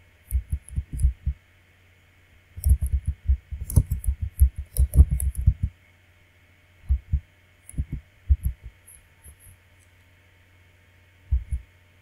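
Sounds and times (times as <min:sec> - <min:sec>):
typing on keyboard: 0:02.6 - 0:05.7.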